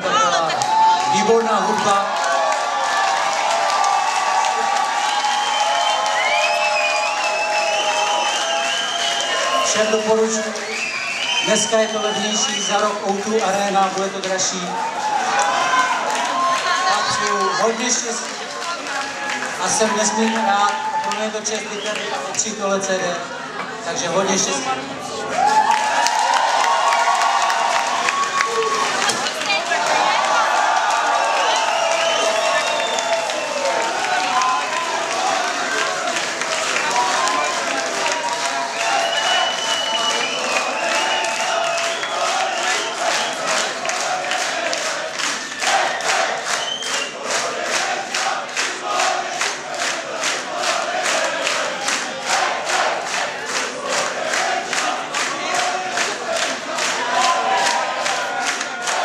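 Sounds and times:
audience cheering and shouting: 0.0 - 22.2, 24.2 - 59.0
rhythmic clapping: 0.5 - 21.2, 25.7 - 59.0.

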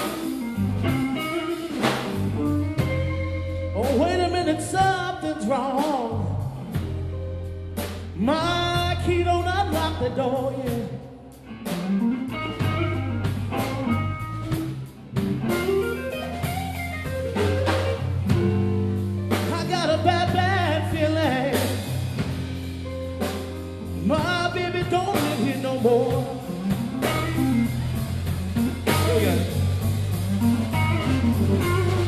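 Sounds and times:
lead guitar solo: 0.0 - 4.1, 11.4 - 19.7, 26.4 - 32.0
bass guitar: 0.0 - 32.0
drums: 0.0 - 32.0.

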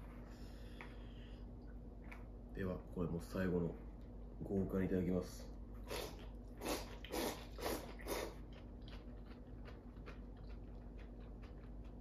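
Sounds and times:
noodles slurped: 5.8 - 11.4.

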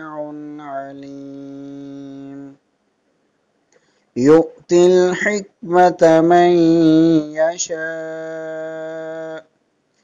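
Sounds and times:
man reciting melodically: 0.0 - 2.6, 4.2 - 9.5.

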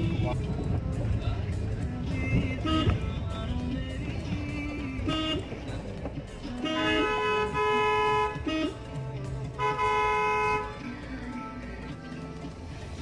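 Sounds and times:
background music: 0.0 - 13.0
car horn blasts: 2.5 - 3.2, 4.9 - 5.5, 6.5 - 8.8, 9.6 - 10.8.

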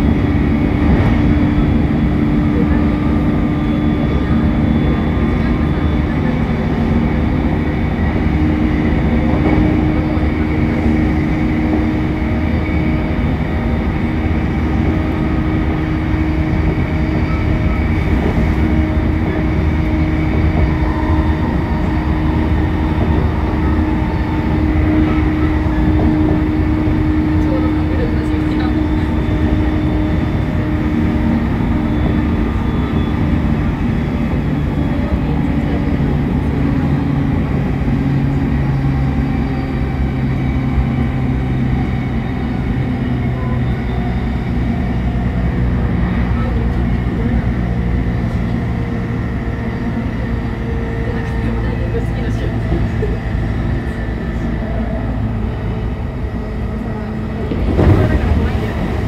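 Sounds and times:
train motor and gear whine: 0.0 - 59.0
train wheels rumbling on rails: 0.0 - 59.0.

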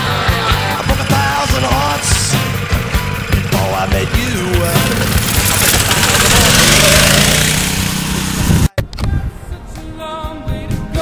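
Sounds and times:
music with singing: 0.0 - 5.2, 8.5 - 11.0
go-kart engine running: 0.0 - 8.7.

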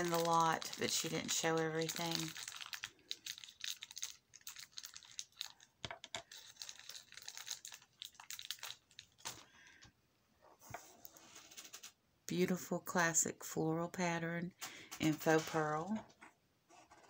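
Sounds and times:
jewellery and packaging clicking: 0.0 - 9.5.

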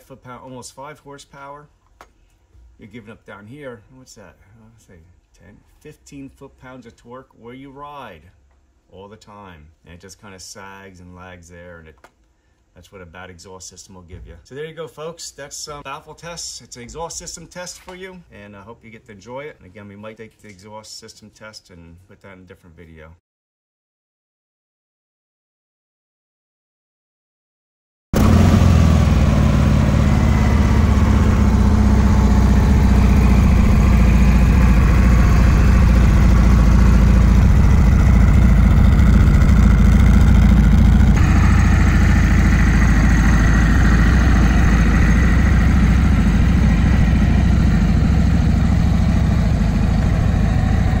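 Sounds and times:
motorcycle engine idling: 28.2 - 51.0.

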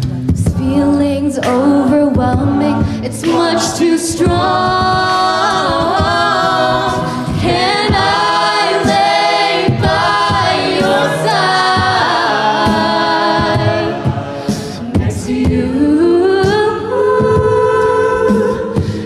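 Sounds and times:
a cappella group singing: 0.0 - 19.0.

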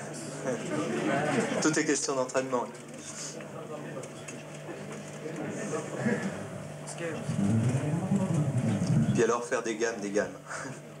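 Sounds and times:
electric bass fingerpicked notes: 7.2 - 9.2.

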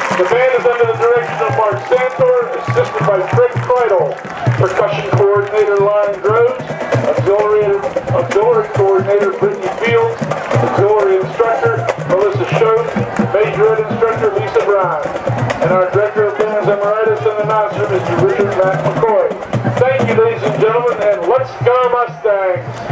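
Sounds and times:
announcer over stadium pa: 0.0 - 22.9
music playing: 0.0 - 22.9.

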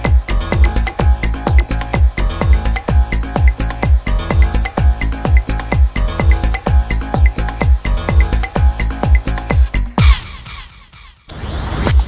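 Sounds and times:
house music kick drum: 0.0 - 10.9.

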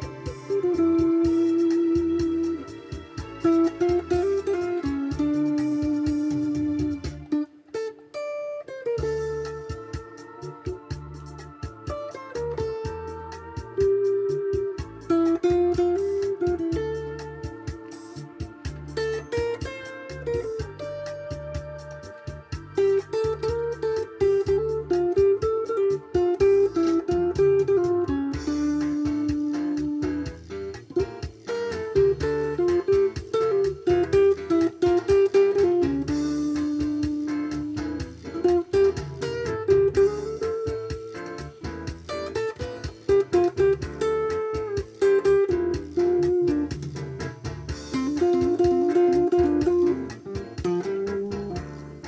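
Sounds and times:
bass and drums backing track: 0.0 - 7.5, 9.0 - 52.0
electric guitar melody: 0.0 - 52.0.

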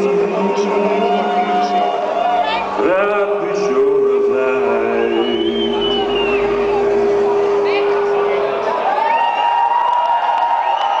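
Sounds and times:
concert audience cheering: 0.0 - 11.0
long high rising calls: 4.6 - 11.0.

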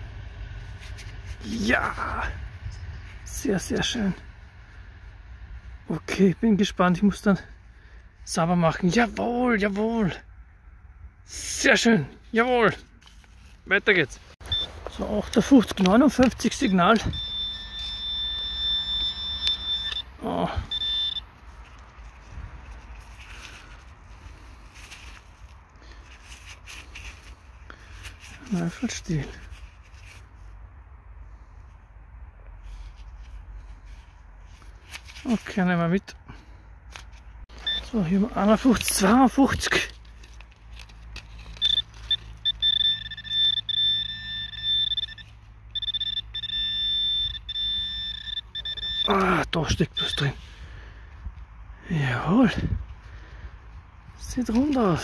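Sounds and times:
pinpointer high-pitched tone: 14.4 - 21.3, 41.6 - 50.4
soil rustling and crunching: 54.2 - 55.0.

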